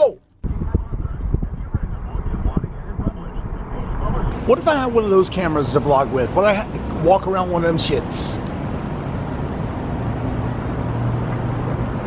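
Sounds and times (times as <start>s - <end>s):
road and engine rumble: 0.0s - 12.0s.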